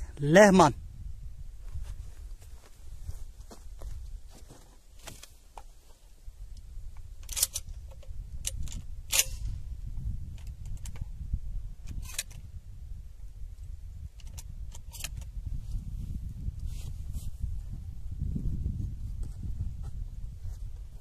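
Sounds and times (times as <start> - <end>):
shotgun and gear clicking: 7.2 - 9.5, 14.2 - 15.3.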